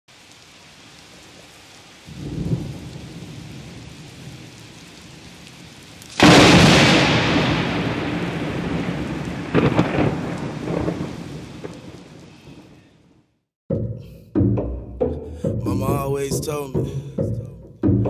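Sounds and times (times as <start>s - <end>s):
rain hiss: 0.1s - 13.0s
loud thunderclap: 2.1s - 4.4s, 6.2s - 12.2s
low rumble of thunder: 2.1s - 4.5s, 6.2s - 12.2s.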